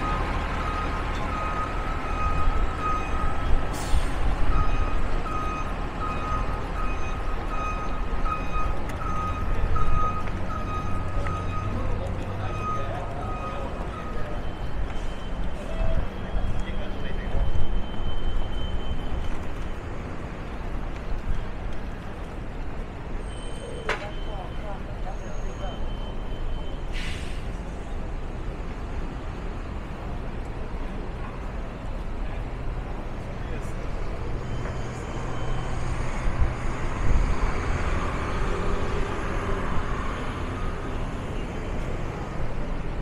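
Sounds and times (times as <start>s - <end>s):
street traffic rumble: 0.0s - 43.0s.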